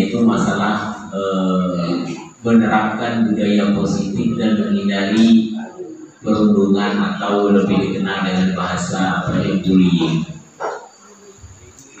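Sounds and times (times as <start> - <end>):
man's amplified speech: 0.0 - 10.4
faint room noise: 0.0 - 12.0.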